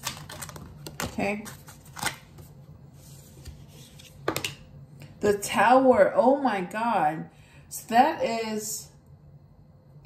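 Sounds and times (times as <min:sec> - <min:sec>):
cards being shuffled: 0:00.0 - 0:04.4.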